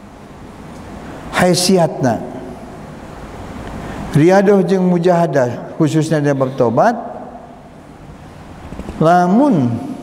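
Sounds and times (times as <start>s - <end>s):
electric fan running: 0.0s - 10.0s.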